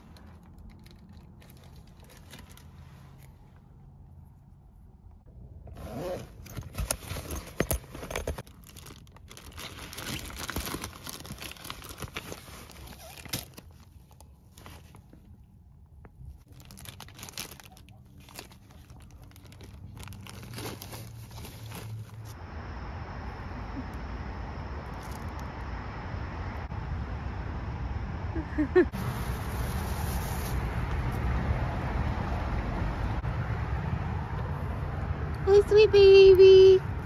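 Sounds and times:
plastic bag rustling and crinkling: 0.0s - 3.3s, 6.5s - 15.4s, 16.3s - 22.4s.

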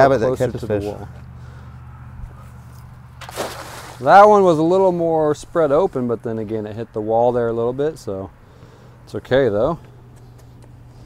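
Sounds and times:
cast net splashing into water: 3.2s - 4.4s.

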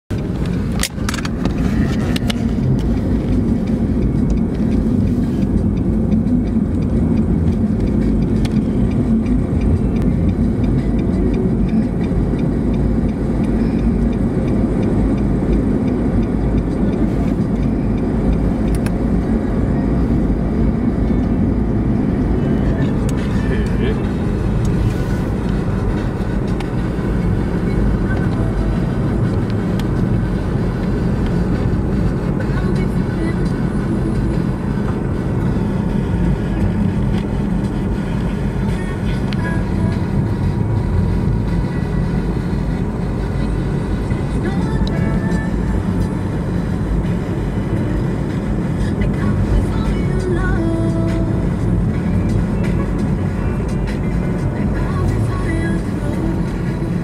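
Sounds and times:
car cabin road rumble: 0.1s - 57.0s.

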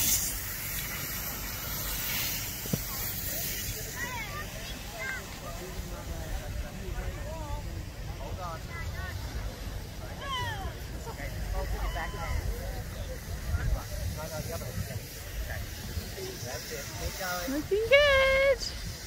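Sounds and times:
low rumble and hiss: 0.0s - 19.0s.

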